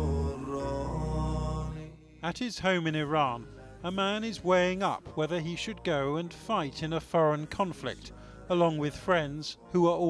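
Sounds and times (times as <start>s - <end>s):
person singing long notes: 0.0s - 2.0s.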